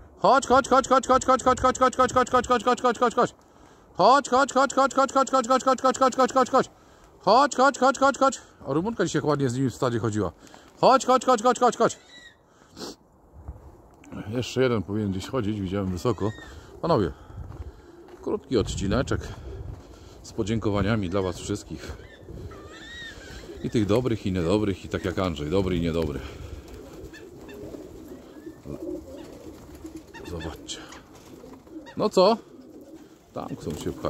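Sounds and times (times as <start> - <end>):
breath close to microphone: 3.4 - 4.0, 6.7 - 7.2, 10.4 - 10.8, 12.5 - 13.1, 16.4 - 18.2, 19.2 - 20.3
pigeons cooing: 15.2 - 34.0.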